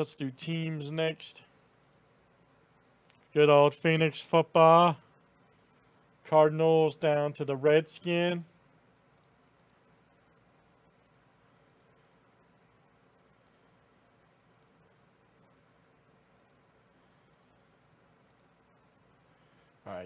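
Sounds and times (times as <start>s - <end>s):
computer mouse clicks: 1.8s - 2.0s, 3.0s - 3.3s, 9.1s - 9.8s, 11.0s - 12.3s, 13.4s - 13.7s, 14.5s - 14.8s, 15.4s - 15.7s, 16.3s - 17.6s, 18.2s - 18.6s.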